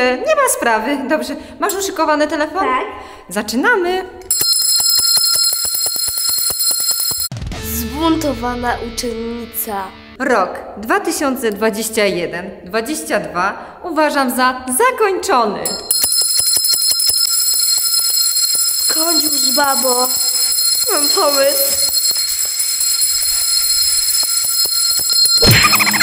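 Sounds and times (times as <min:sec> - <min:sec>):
hand bell rung rapidly: 0:04.3 - 0:07.3, 0:15.7 - 0:26.0.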